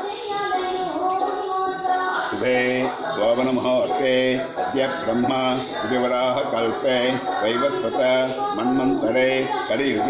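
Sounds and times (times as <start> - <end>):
person singing in long held notes: 0.0 - 10.0.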